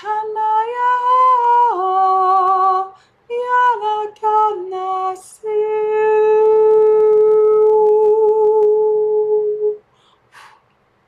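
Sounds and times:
woman singing long note: 0.0 - 9.8.

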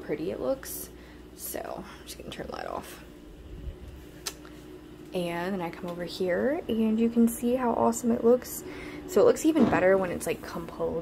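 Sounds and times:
faint steady hum: 0.0 - 11.0
low rumble: 3.3 - 4.1.

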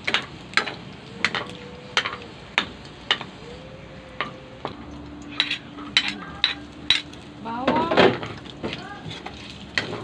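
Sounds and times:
fat sizzling: 0.0 - 10.0
spatula scraping wok: 5.2 - 7.2, 8.0 - 10.0.

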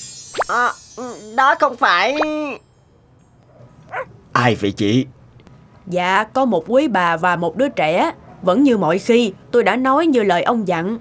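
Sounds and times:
cartoon dog whine: 3.5 - 4.1.

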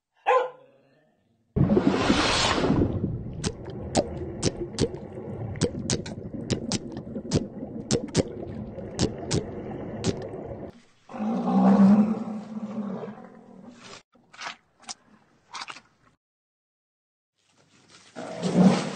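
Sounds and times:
low underwater rumble: 1.6 - 10.7
underwater sharp clicks: 3.4 - 10.4
animal roar-like call: 11.1 - 13.4.

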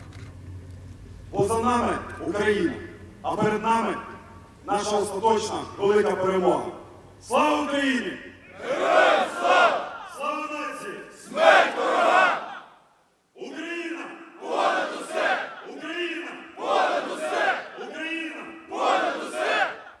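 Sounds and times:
group of men shouting in unison: 8.6 - 10.2, 11.3 - 12.8, 14.4 - 15.9, 16.6 - 17.9, 18.7 - 19.9
man shouting a slogan: 13.4 - 14.4, 15.6 - 16.6, 17.8 - 18.7.

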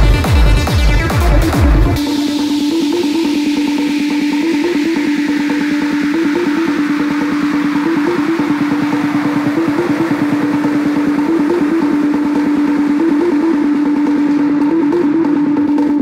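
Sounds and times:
techno beat: 0.0 - 16.0.

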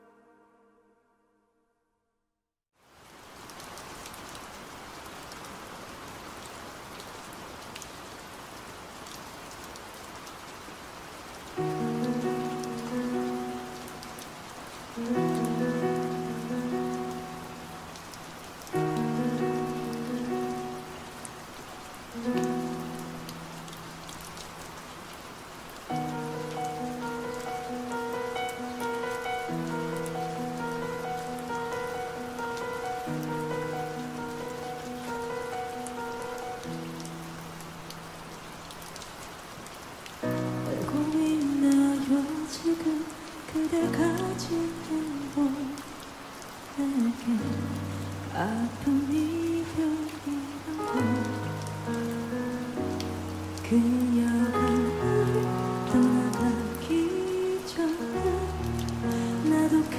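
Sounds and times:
steady rain: 2.8 - 59.9
person singing: 40.7 - 46.0, 46.8 - 51.9, 53.6 - 59.9.

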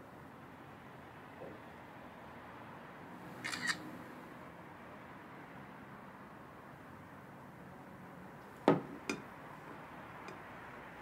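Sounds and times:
camera shutter double click: 3.4 - 3.8.

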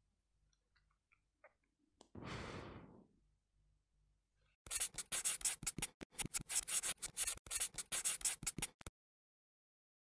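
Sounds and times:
person sighing: 2.2 - 3.0.

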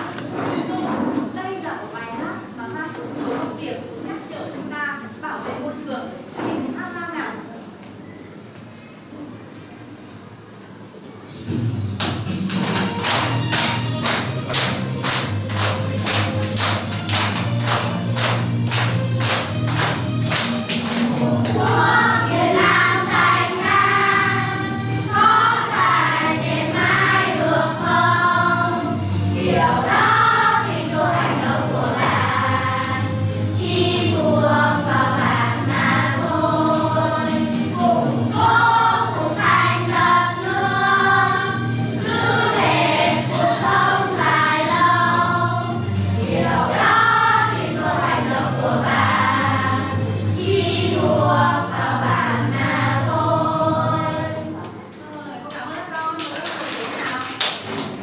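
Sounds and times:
instrumental backing with bass: 11.4 - 54.2
group singing: 20.8 - 54.6.

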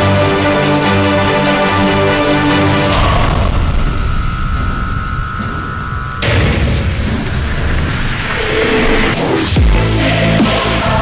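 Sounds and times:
steady high tone: 0.0 - 11.0
loud rush of noise: 0.1 - 11.0
deep rumbling boom: 2.7 - 10.4.

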